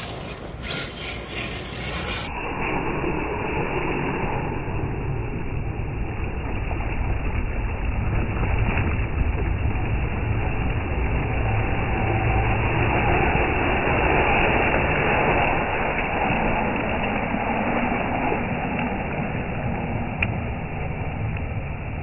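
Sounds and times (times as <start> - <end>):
toy truck motor running: 0.0 - 2.3.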